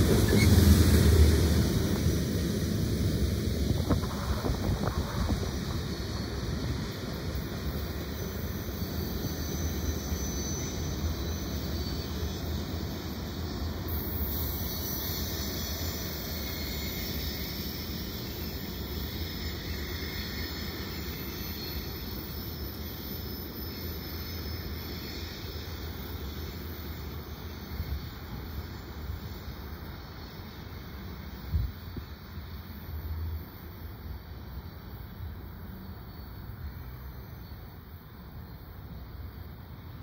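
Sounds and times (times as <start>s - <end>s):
freight train rumbling: 0.0s - 40.0s.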